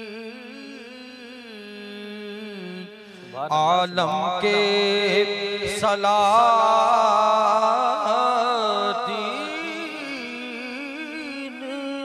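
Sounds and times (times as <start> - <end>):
man singing with vibrato: 0.0 - 12.0.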